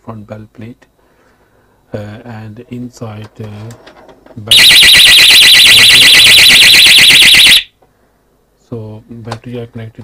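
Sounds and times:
alarm siren electronic warble: 4.5s - 7.7s.

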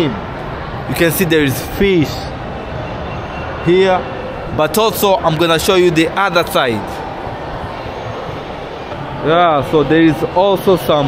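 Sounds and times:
metro station rushing noise: 0.0s - 11.0s.

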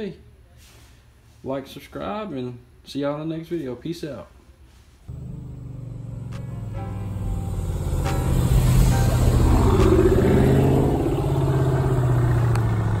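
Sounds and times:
car engine driving off: 5.1s - 13.0s.

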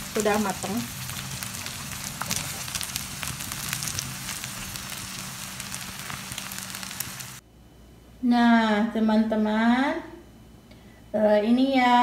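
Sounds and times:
food sizzling in a frying pan: 0.0s - 7.4s.

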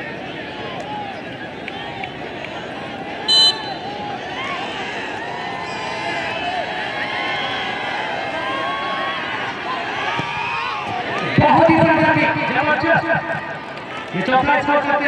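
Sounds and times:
spectators chattering and calling out: 0.0s - 15.0s
referee's whistle: 3.3s - 4.0s.

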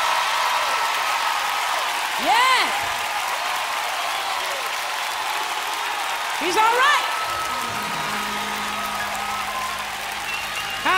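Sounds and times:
audience applause and cheering: 0.0s - 10.9s
held keyboard chord: 7.3s - 10.9s.

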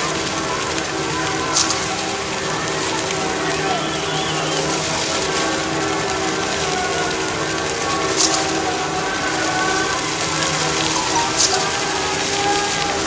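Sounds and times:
bonfire flames hissing: 0.0s - 13.0s
falling rain: 0.0s - 13.0s
sharp fire crackle: 0.0s - 13.0s.

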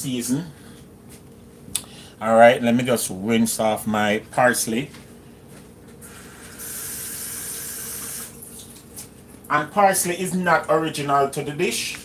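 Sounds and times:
kitchen tap running: 6.2s - 8.9s.

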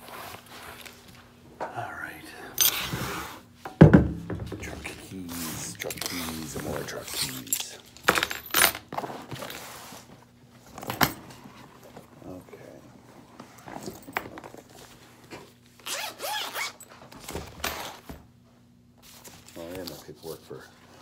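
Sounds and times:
keys jangling and rustling: 2.6s - 2.9s, 5.8s - 8.9s.

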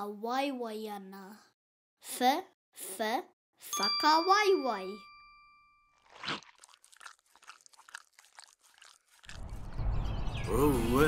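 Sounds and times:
cartoon bite: 6.0s - 9.4s
quick chewing sounds: 6.0s - 9.7s
low rumble: 9.4s - 11.0s.

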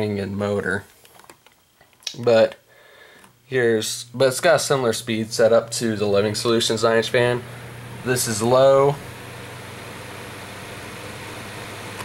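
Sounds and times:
fan motor hum: 2.1s - 12.0s
box fan whirring: 2.2s - 12.0s.

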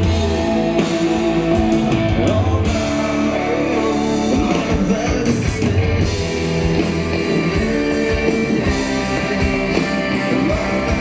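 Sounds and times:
live rock band playing: 0.0s - 11.0s
person singing: 0.0s - 11.0s.

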